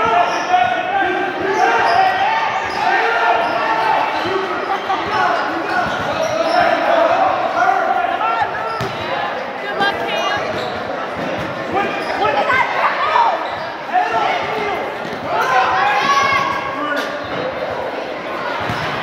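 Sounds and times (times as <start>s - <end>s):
sneaker squeaks: 1.4s - 7.1s, 8.4s - 9.1s, 10.2s - 17.7s, 18.6s - 19.0s
basketball bouncing: 8.8s - 9.0s.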